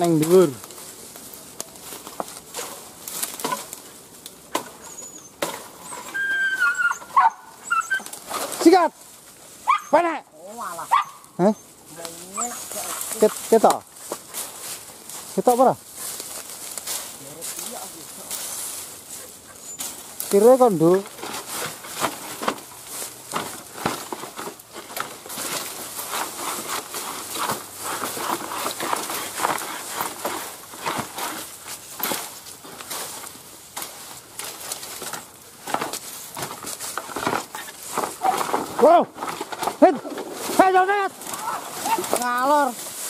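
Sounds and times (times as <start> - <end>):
bamboo and leaves rustling crackling: 0.0 - 43.0
short pitched calls: 4.8 - 8.1.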